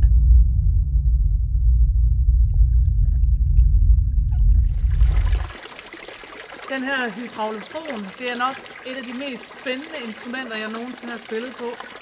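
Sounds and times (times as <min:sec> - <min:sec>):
deep rumbling water organ bass: 0:00.0 - 0:05.6
water jets hissing: 0:04.7 - 0:12.0.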